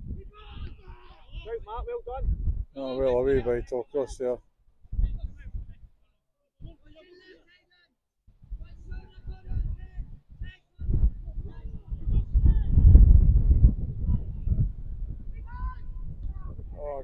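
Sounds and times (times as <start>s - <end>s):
wind buffeting microphone: 0.0s - 4.2s, 4.8s - 5.9s, 8.4s - 17.0s.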